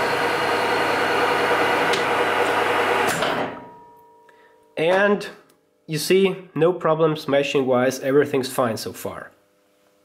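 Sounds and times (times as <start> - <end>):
metal lathe running: 0.0 - 3.2.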